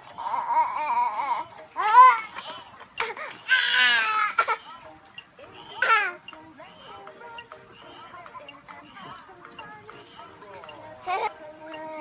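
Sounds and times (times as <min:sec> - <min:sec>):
baby squealing: 0:03.0 - 0:04.7.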